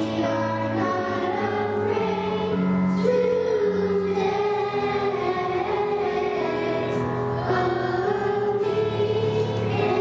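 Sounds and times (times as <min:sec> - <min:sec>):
children singing: 0:00.0 - 0:10.0
musical accompaniment: 0:00.0 - 0:10.0.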